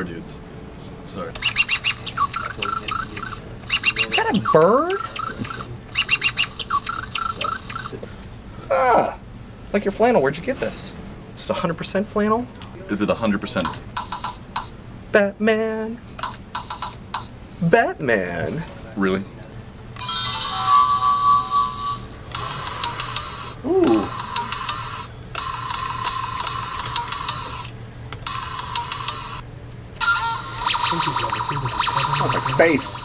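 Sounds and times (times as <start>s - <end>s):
doorbell electronic tone: 20.0s - 22.0s.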